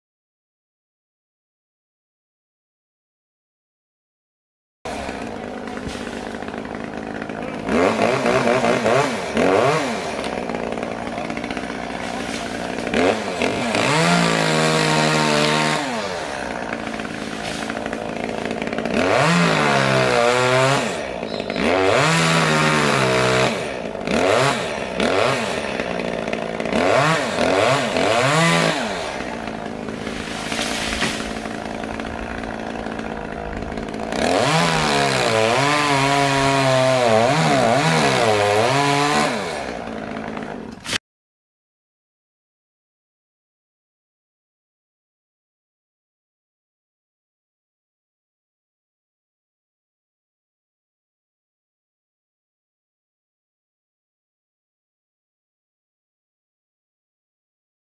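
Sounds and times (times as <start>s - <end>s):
chainsaw revving: 4.9s - 41.0s.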